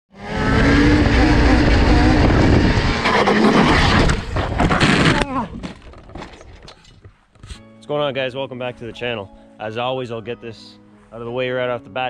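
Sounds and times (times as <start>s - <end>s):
two-stroke engine revving high: 0.1s - 5.1s
wind noise on microphone: 0.4s - 5.8s.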